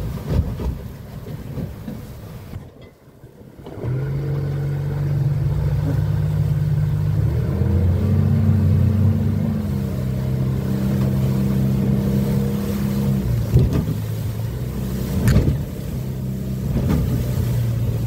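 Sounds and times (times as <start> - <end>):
outboard motor droning: 0.0 - 18.0.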